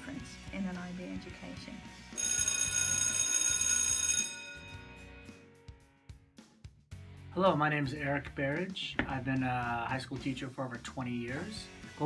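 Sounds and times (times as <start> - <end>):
background music: 0.0 - 12.0
bell ringing loudly: 2.2 - 5.4.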